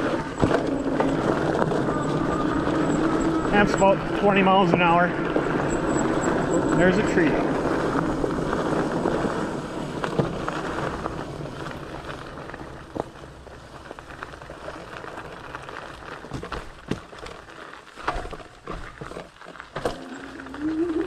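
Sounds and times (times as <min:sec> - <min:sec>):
bike tires rolling over dirt: 0:00.0 - 0:21.0
knocks and rattles of bike: 0:00.0 - 0:21.0.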